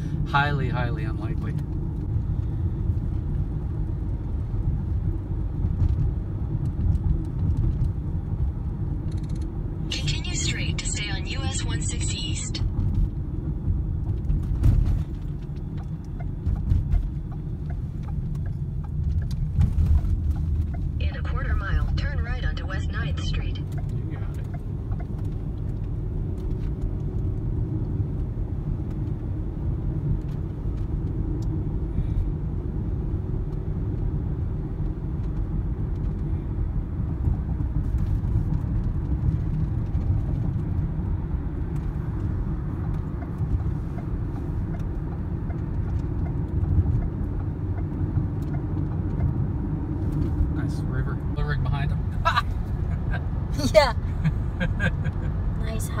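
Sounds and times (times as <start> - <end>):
car road noise rumble: 0.0 - 56.0.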